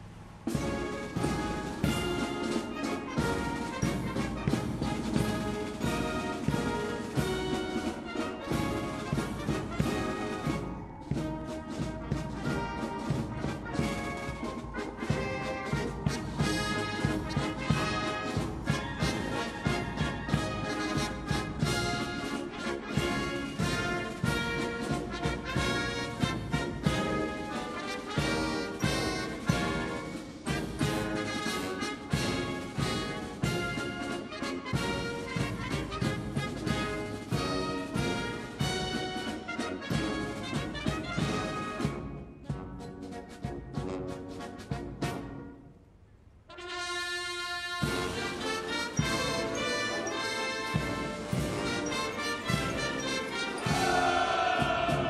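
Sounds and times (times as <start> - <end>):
brass band playing: 0.3 - 45.8, 46.4 - 55.0.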